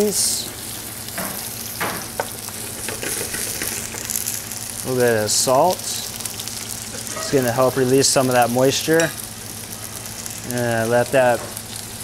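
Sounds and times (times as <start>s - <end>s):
onions sizzling in hot oil: 0.0s - 12.0s.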